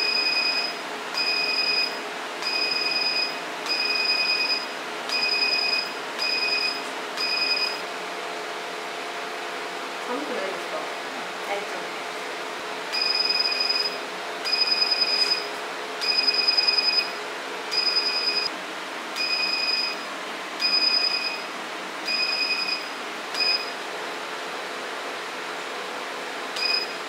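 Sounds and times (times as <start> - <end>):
machine beeping: 0.0 - 7.8, 12.9 - 18.5, 19.2 - 23.8, 26.6 - 27.0
steady machine hum: 0.0 - 27.0.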